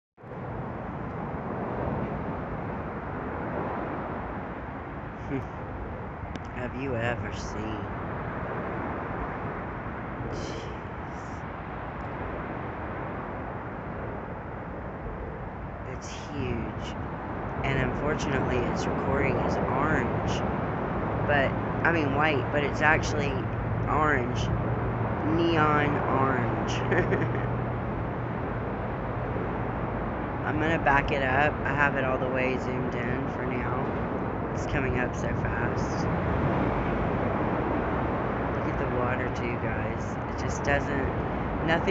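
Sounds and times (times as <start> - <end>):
rushing outdoor background noise: 0.2 - 41.9.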